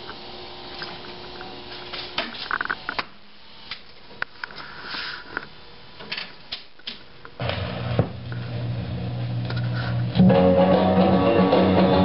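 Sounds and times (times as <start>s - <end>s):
steady low hum: 7.3s - 10.3s.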